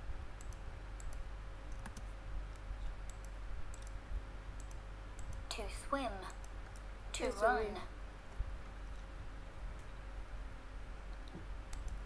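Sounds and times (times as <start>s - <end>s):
keyboard typing clicks: 0.4s - 4.0s, 4.6s - 5.4s, 11.2s - 12.0s
woman speaking: 5.5s - 6.4s, 7.1s - 7.9s.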